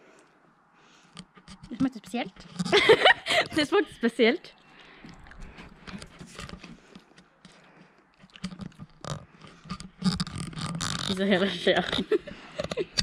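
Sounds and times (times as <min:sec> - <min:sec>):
wet mouth eating sounds: 0:05.0 - 0:06.7, 0:08.1 - 0:11.1.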